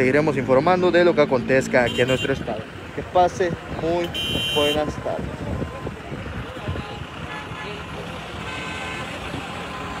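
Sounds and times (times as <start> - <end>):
traffic rumble: 0.0 - 10.0
faint voices: 5.0 - 10.0.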